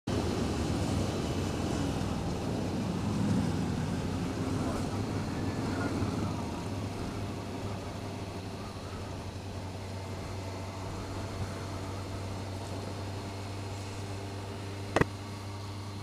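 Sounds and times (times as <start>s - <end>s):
motorcycle engine running: 0.1s - 16.0s.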